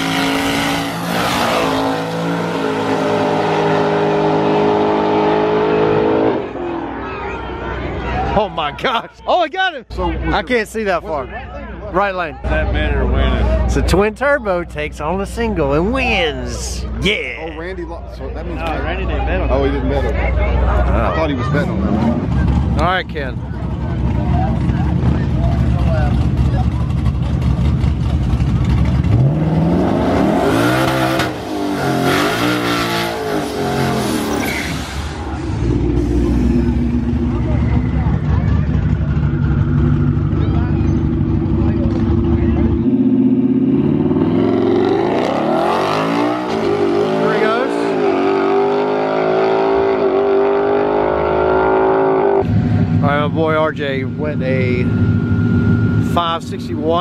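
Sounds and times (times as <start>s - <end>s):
car accelerating away: 0.0s - 7.2s, 23.5s - 53.4s
car engine revving: 0.0s - 8.2s, 20.6s - 57.0s.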